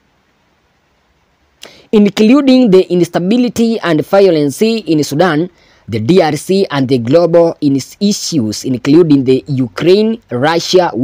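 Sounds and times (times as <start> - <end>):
short hiss: 1.3 - 2.0
man speaking: 1.7 - 11.0.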